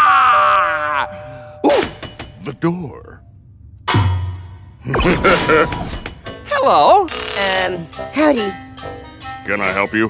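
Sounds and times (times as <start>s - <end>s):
deep maniacal laugh: 4.9s - 5.9s.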